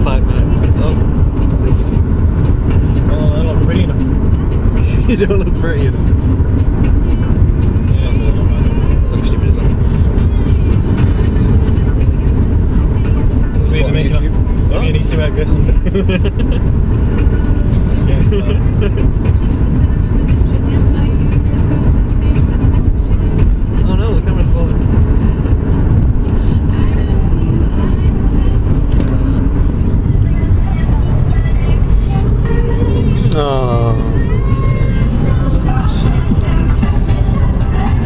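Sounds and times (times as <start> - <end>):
people's voices: 0.0 - 2.1, 2.7 - 6.2, 6.8 - 25.2, 26.3 - 38.0
car driving rumble inside cabin: 0.0 - 38.0.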